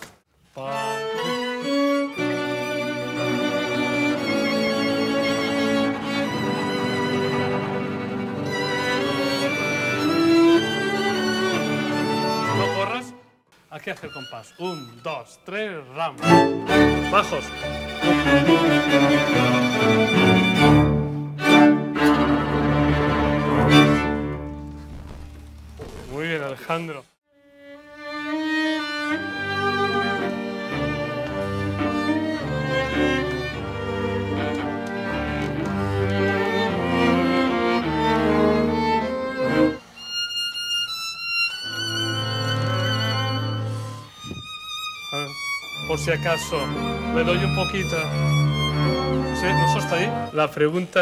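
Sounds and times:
string ensemble playing: 0.4s - 24.9s, 27.5s - 51.0s
high violin line with vibrato: 0.6s - 13.2s, 13.8s - 15.4s, 16.0s - 24.6s, 27.5s - 50.4s.

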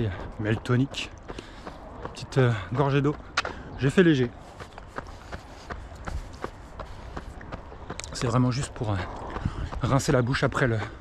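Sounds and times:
running footsteps on asphalt: 0.0s - 11.0s.

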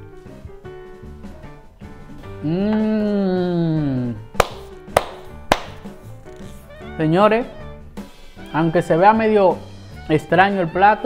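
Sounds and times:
quiet background music: 0.0s - 11.0s
sharp hand claps: 4.3s - 5.9s.

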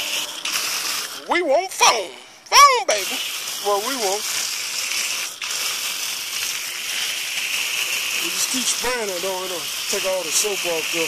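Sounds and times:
water spraying from hose: 0.0s - 11.0s.

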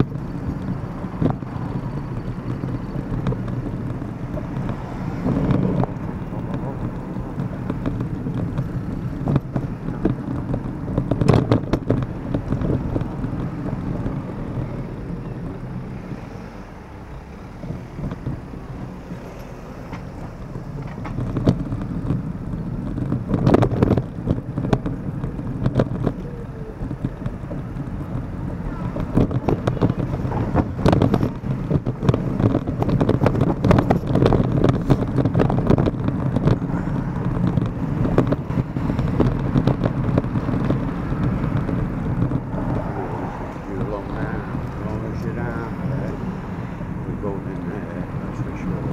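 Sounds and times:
passing road traffic: 0.0s - 48.9s
wind buffeting microphone: 0.0s - 48.9s.

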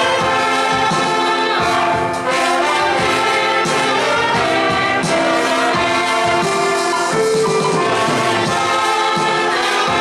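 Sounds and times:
band playing a hymn: 0.0s - 10.0s.

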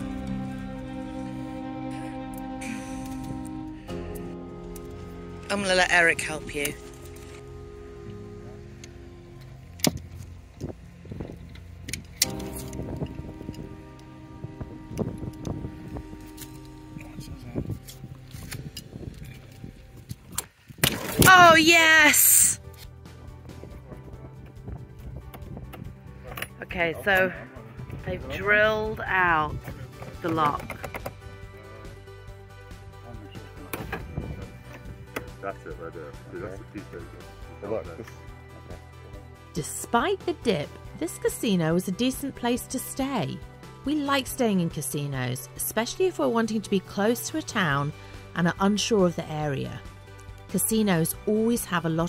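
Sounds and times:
background music: 0.0s - 52.0s.

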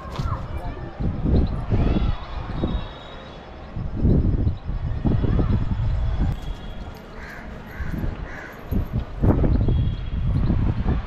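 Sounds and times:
crow cawing: 7.2s - 8.6s.

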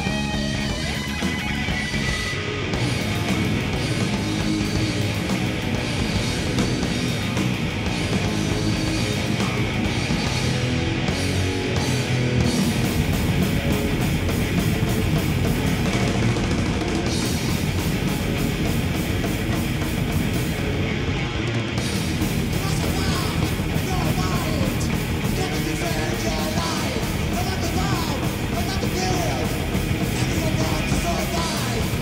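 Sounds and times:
heavy metal band playing live: 0.0s - 32.0s.

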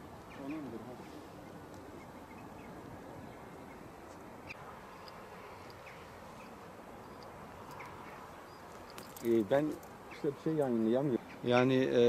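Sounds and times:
low background hiss: 0.0s - 12.0s
small birds chirping: 0.0s - 12.0s.

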